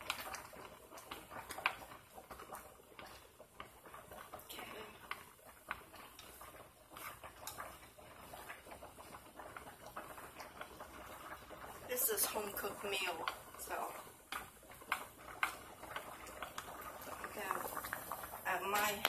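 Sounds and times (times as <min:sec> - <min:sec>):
pasta water bubbling: 0:00.0 - 0:19.0.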